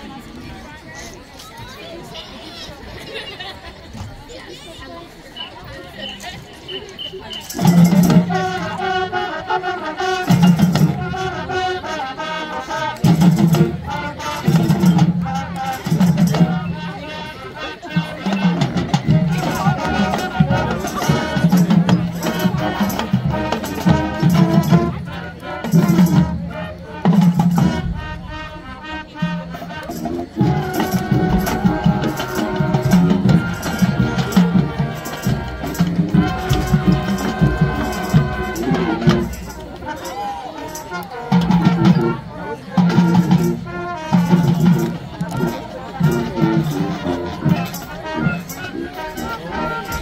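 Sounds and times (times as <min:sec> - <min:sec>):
crowd chatter: 0:00.0 - 0:50.0
marching band playing: 0:05.2 - 0:50.0.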